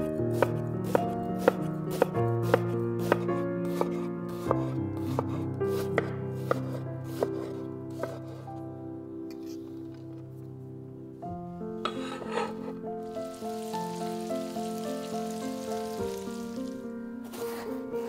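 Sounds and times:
soft background music: 0.0s - 18.0s
knife chopping on wooden board: 0.3s - 8.4s.

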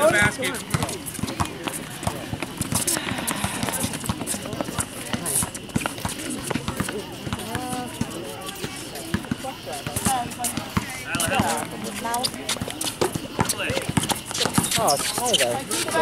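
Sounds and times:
people talking: 0.0s - 16.0s
running footsteps on court: 0.0s - 16.0s
basketball bouncing: 0.3s - 16.0s.

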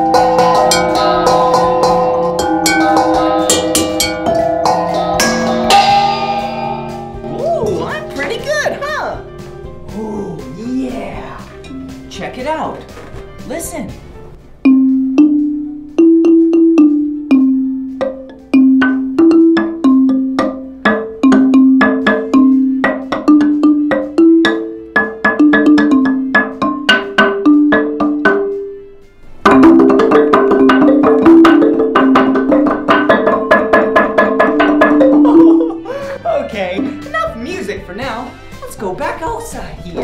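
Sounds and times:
wooden xylophone played with mallets: 0.0s - 13.6s, 14.6s - 40.0s.

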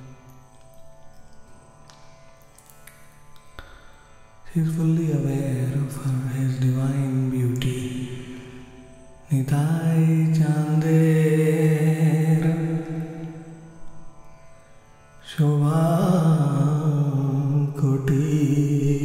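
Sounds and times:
man singing devotional song: 4.5s - 8.7s, 9.3s - 13.4s, 15.2s - 19.0s.

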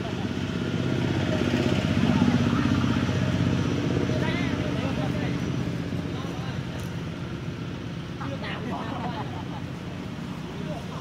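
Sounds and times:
engine droning: 0.0s - 11.0s.

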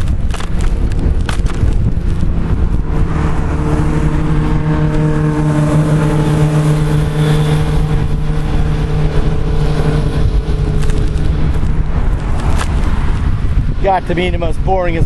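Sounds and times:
engine running steadily: 0.0s - 15.0s
wind rumble on microphone: 0.0s - 15.0s.

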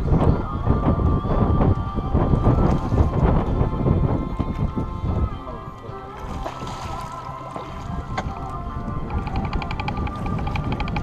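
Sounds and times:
background music: 0.0s - 11.0s
water slapping against boat: 0.0s - 11.0s
wind buffeting microphone: 0.0s - 11.0s.

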